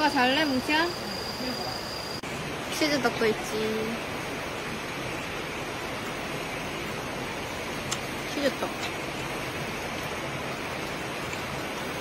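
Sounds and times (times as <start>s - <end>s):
stream water rushing over rocks: 0.0s - 12.0s.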